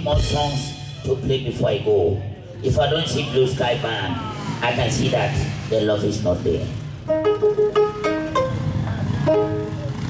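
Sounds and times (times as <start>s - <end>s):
plucked lute notes: 7.0s - 10.0s
low accompaniment: 7.1s - 10.0s.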